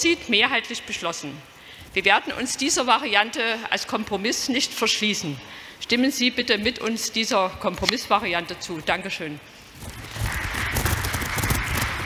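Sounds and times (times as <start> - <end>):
crowd applauding: 9.9 - 12.0.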